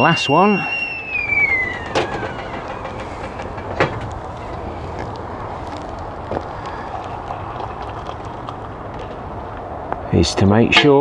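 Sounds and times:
kettle whistle: 0.0s - 3.1s
low rumbling background: 0.0s - 10.1s.

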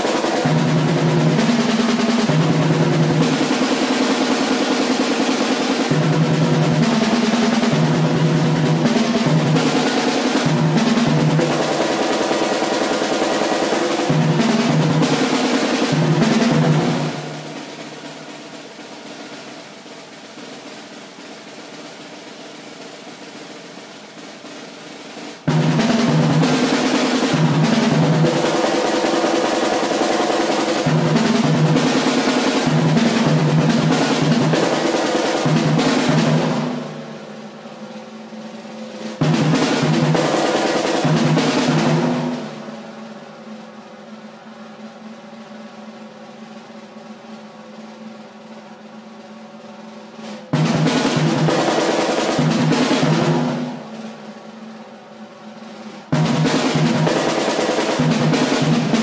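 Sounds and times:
solo drumming with fast rolls: 0.0s - 59.0s.

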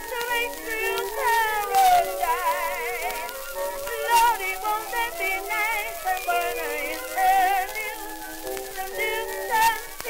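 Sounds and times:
acoustic jazz band on old record: 0.0s - 10.0s.

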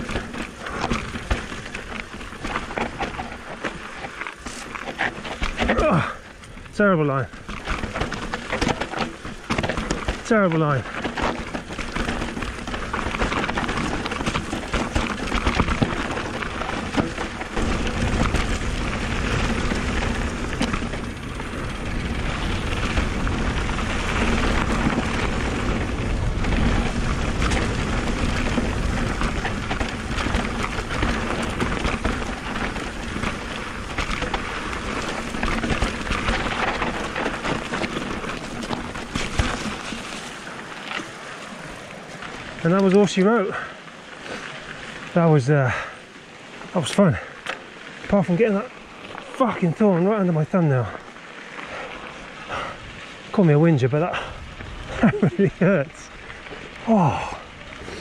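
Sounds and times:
bike rattling and knocking: 0.0s - 58.0s
tyres crunching over rocky dirt: 0.0s - 58.0s.

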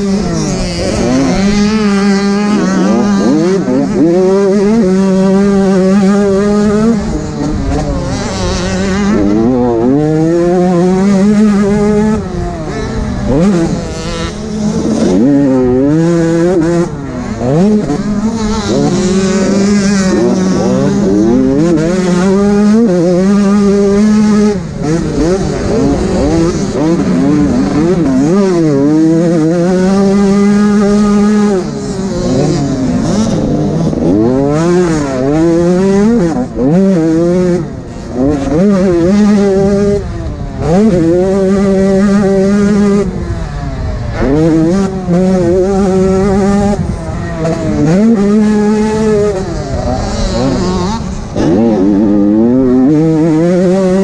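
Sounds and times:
motocross bike engine revving: 0.0s - 54.0s.

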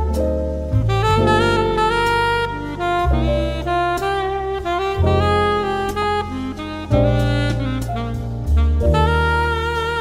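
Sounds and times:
bass line: 0.0s - 10.0s
saxophone melody: 0.0s - 10.0s.

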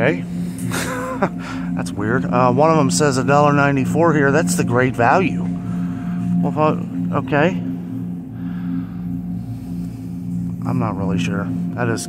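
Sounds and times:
refrigerated display case humming: 0.0s - 12.0s.

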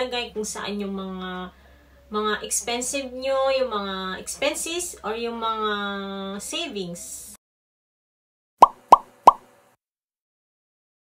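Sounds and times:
downward-sliding pop blips: 8.6s - 9.4s.

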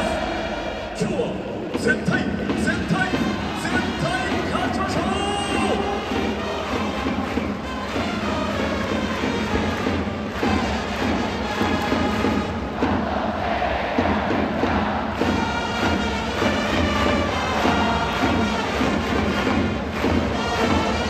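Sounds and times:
crowd singing in unison: 0.0s - 1.6s, 5.5s - 21.0s
drums: 0.0s - 21.0s
trumpets: 2.6s - 13.9s, 14.7s - 21.0s.

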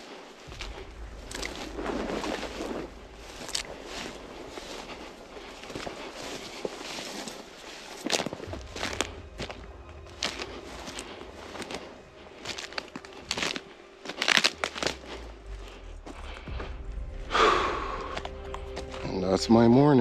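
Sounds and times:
crunching and crackling: 0.0s - 16.8s.

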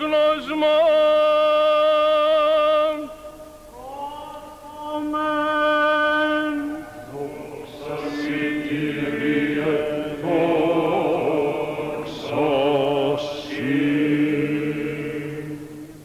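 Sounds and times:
men chanting over held drone: 3.9s - 16.0s.

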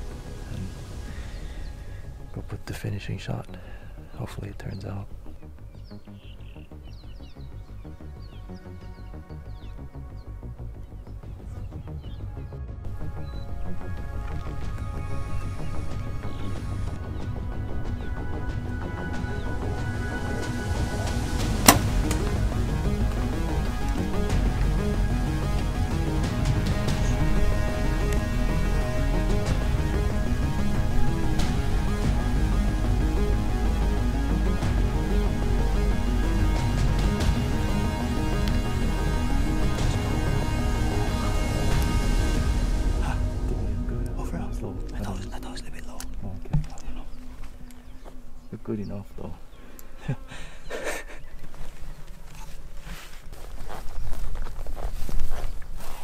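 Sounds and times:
background music: 0.0s - 56.0s
compound bow snap: 21.4s - 22.4s
insect buzzing: 49.4s - 52.5s.

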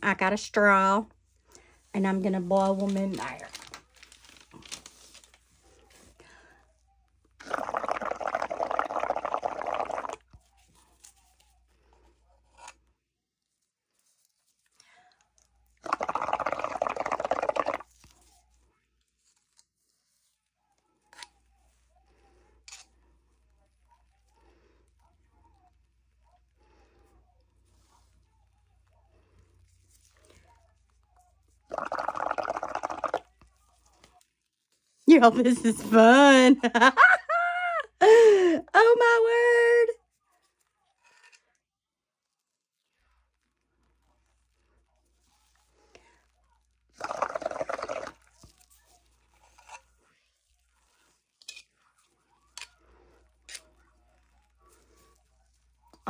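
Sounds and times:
bubbling through a straw: 7.3s - 10.5s, 15.6s - 18.3s, 28.8s - 34.0s, 42.9s - 51.2s.

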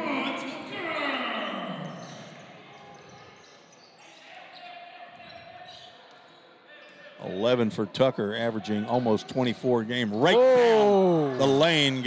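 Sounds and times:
crowd voices: 7.4s - 12.0s.

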